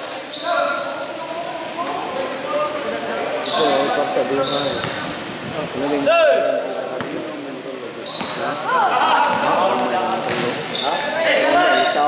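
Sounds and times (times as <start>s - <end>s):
players calling out: 0.1s - 12.0s
sneakers squeaking on court: 3.4s - 5.3s, 7.0s - 8.6s, 9.3s - 12.0s.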